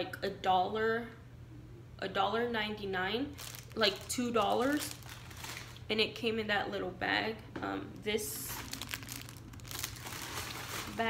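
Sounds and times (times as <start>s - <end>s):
plastic bag crinkling: 3.3s - 5.9s, 8.2s - 11.0s.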